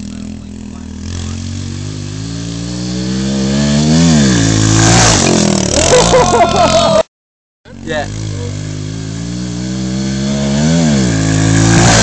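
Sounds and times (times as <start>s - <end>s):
pit bike engine revving: 0.0s - 7.0s, 7.7s - 12.0s.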